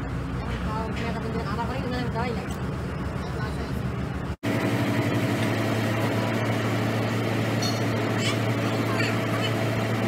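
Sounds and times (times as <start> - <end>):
heavy diesel machinery drone: 0.0 - 10.0.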